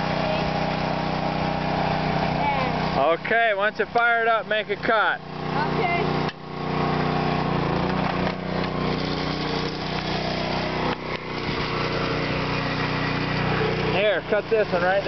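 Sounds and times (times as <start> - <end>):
chainsaw engine running: 0.0 - 15.0.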